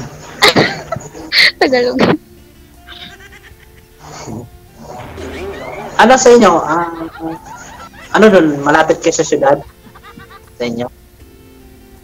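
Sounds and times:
faint sustained tones: 4.7s - 8.1s.

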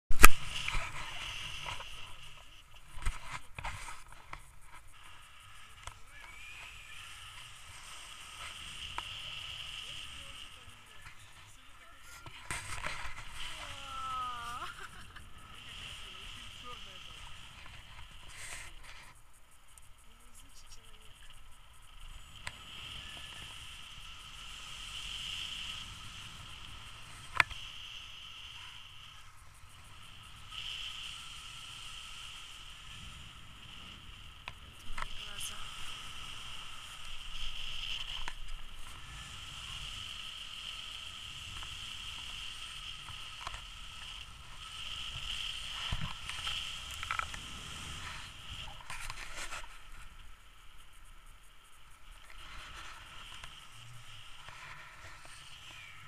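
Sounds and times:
high whistle-like tone: 5.5s - 9.3s.

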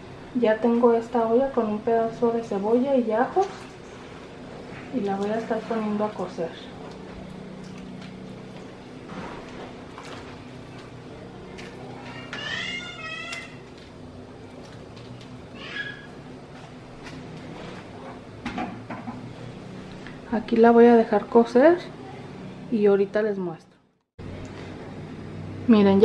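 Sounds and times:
steady low hum: 0.0s - 26.0s
small animal high-pitched call: 15.6s - 16.2s.

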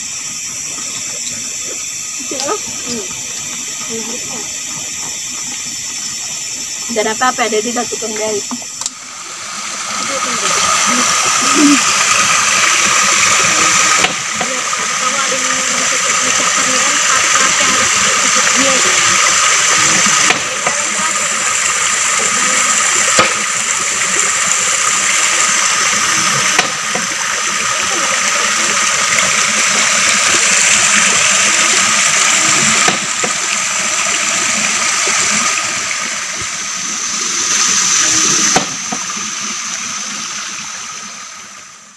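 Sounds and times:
stream water rushing: 0.7s - 41.9s
high-pitched drone: 6.2s - 33.6s.

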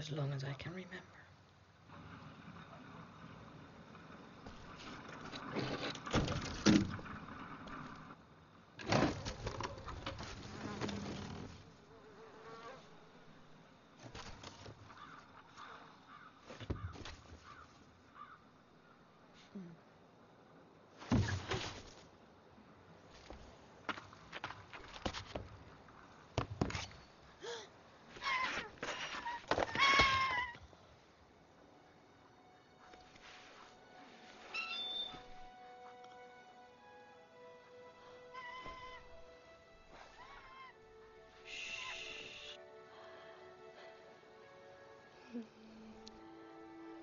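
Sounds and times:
wooden boards clattering: 5.4s - 7.4s
faint wavering chirp: 34.4s - 35.6s, 41.5s - 42.6s.

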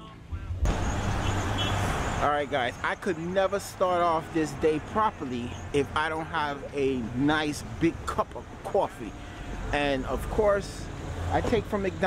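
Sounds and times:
road traffic rumble and hiss: 0.0s - 12.0s.

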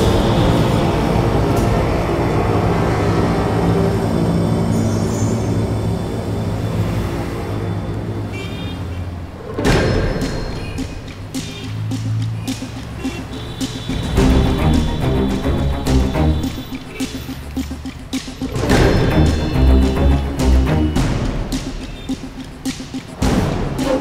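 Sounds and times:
low sustained music score: 0.0s - 8.2s, 14.1s - 23.8s
loud percussive hits: 9.6s - 24.0s.

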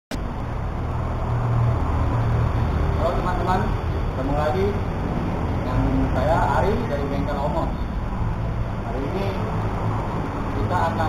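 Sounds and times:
low rumble of vehicle noise: 0.1s - 11.0s
man's voice: 10.5s - 11.0s.

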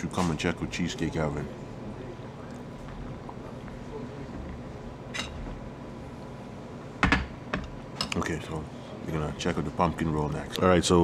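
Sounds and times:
low room noise: 0.0s - 11.0s
objects clattering on a table: 7.0s - 8.2s.

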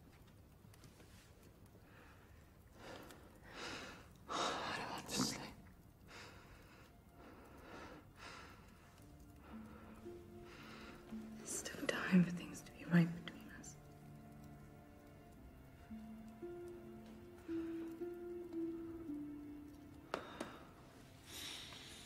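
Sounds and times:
person whispering: 4.3s - 5.6s, 11.4s - 13.9s
soft held music notes: 6.8s - 22.0s.

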